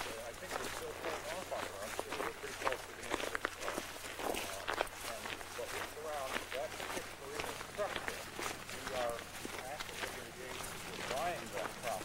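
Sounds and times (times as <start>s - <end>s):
footsteps scuffing on road: 0.0s - 12.0s.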